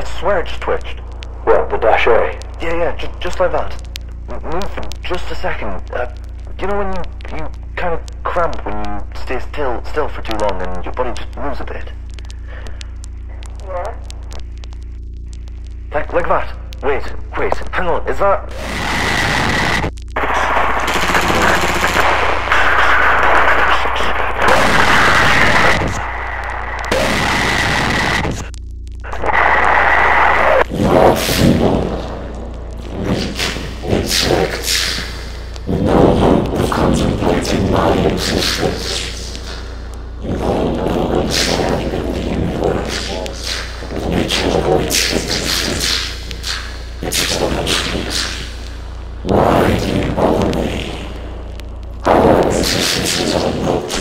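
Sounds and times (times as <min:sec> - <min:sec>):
distorted creature voice: 0:00.0 - 0:14.4, 0:15.9 - 0:54.0
steady low hum: 0:00.0 - 0:54.0
steady high tone: 0:18.5 - 0:23.1, 0:24.4 - 0:54.0.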